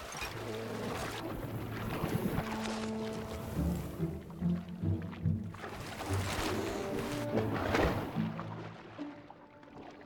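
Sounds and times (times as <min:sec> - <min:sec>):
river water splashing: 0:00.0 - 0:10.0
sustained music notes: 0:00.4 - 0:10.0.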